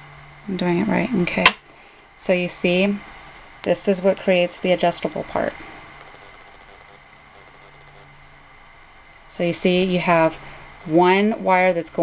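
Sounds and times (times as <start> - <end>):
low hum: 0.0 - 11.8.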